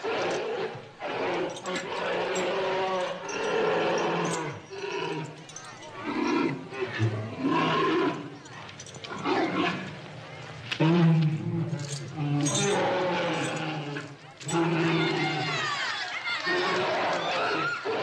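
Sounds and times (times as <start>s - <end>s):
bear roaring and growling: 0.0s - 5.4s, 6.0s - 8.4s, 9.0s - 10.0s, 10.7s - 15.8s
crowd voices: 0.0s - 18.0s.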